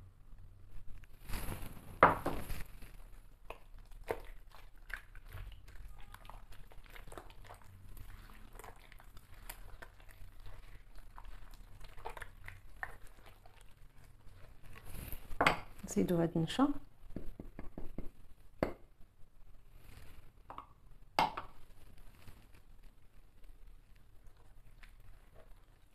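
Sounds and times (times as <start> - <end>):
hand squishing eggs into butter: 2.7 - 15.8
person speaking: 15.8 - 16.8.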